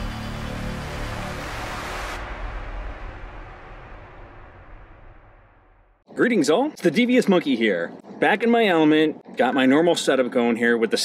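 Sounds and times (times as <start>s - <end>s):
deep rumble: 0.0s - 6.0s
dense rushing noise: 0.0s - 6.0s.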